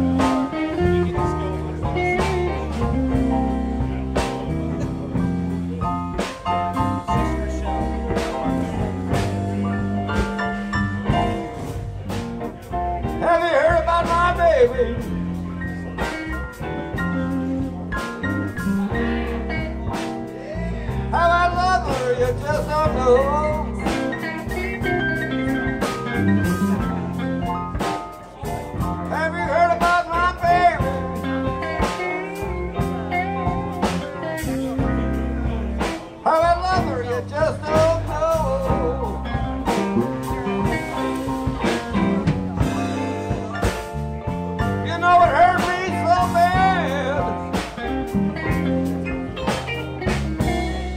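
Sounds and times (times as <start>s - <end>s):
wavering lead melody: 0.0s - 37.5s
bass: 0.0s - 50.9s
bent sliding guitar notes: 0.0s - 50.9s
drum kit: 0.0s - 50.9s
electric guitars: 0.0s - 50.9s.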